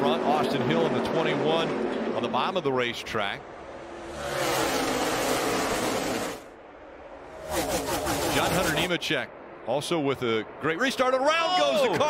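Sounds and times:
race car engines at full throttle: 0:00.0 - 0:09.5.

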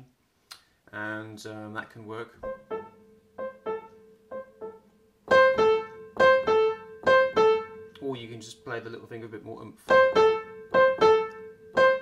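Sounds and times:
piano two-note figure: 0:02.4 - 0:07.9, 0:09.9 - 0:12.0.

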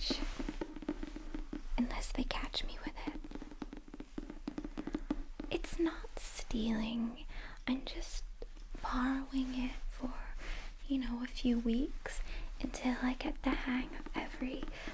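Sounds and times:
soft whispering: 0:00.0 - 0:00.5, 0:01.8 - 0:03.5, 0:05.5 - 0:08.2, 0:08.8 - 0:14.9
fingernails tapping a book: 0:00.1 - 0:05.6.

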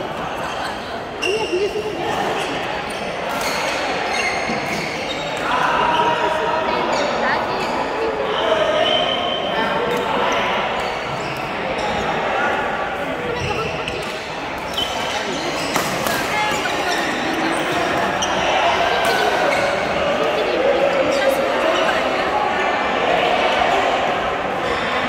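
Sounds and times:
rackets striking shuttlecocks: 0:15.7 - 0:16.7.

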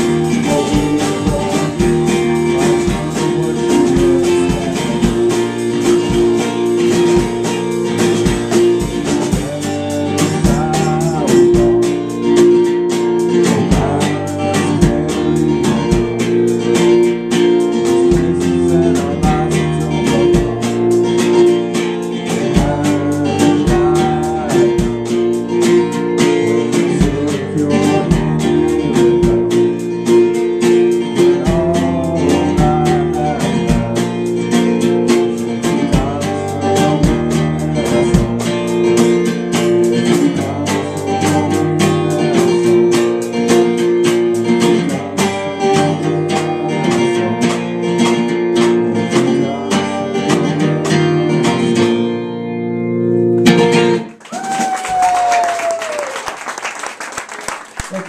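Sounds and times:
drum kit beat: 0:00.0 - 0:51.1
person singing: 0:00.0 - 0:52.0
strummed acoustic guitar: 0:00.0 - 0:54.2
electric guitar: 0:00.0 - 0:56.3
audience applauding: 0:54.0 - 0:58.0.

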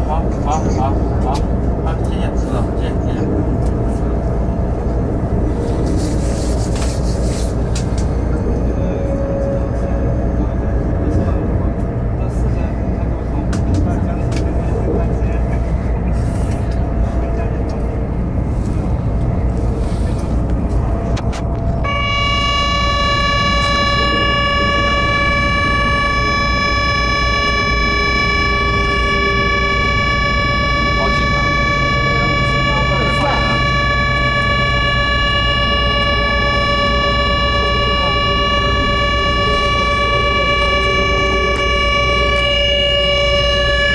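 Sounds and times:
train rumbling on rails: 0:00.0 - 0:43.9
high horn tone: 0:21.8 - 0:43.9.

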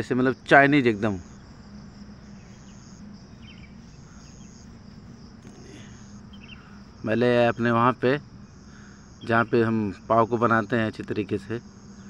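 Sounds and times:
low steady hum: 0:00.0 - 0:12.0
pulsing high-pitched whine: 0:00.0 - 0:12.0.

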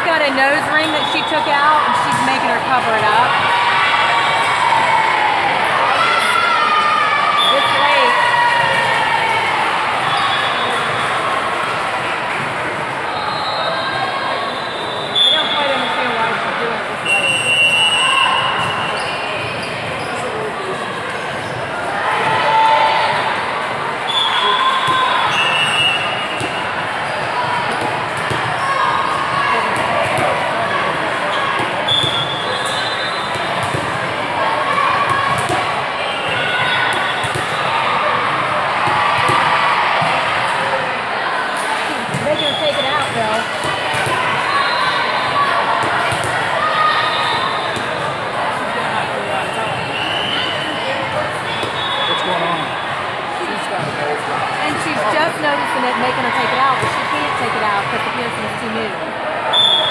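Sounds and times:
chatter of players and spectators: 0:00.0 - 0:59.9
referee whistle blasts: 0:13.1 - 0:16.0, 0:17.0 - 0:19.3, 0:24.1 - 0:26.5, 0:31.9 - 0:33.4, 0:49.8 - 0:50.8, 0:51.5 - 0:52.8, 0:59.5 - 0:59.9
volleyballs hit and bouncing: 0:24.5 - 0:32.4, 0:33.2 - 0:40.8, 0:41.9 - 0:44.5, 0:45.7 - 0:46.6, 0:51.5 - 0:51.8.

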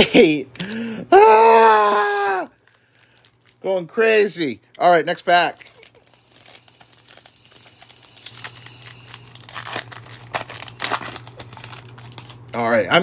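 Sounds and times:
wrapper tearing and crinkling: 0:02.6 - 0:03.6, 0:05.5 - 0:12.6.

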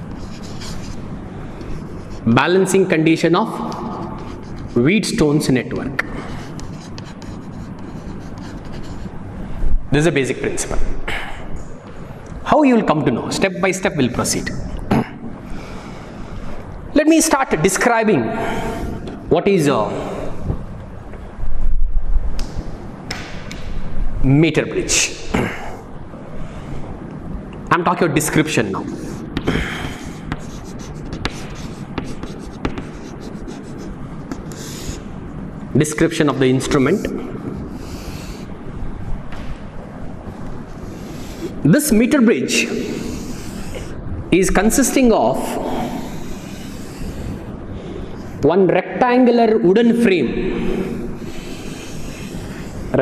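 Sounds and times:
chalk scratching on chalkboard: 0:00.0 - 0:02.4, 0:03.7 - 0:05.2, 0:06.2 - 0:09.2, 0:28.8 - 0:35.0
chalk tapping on board: 0:29.4 - 0:35.0.

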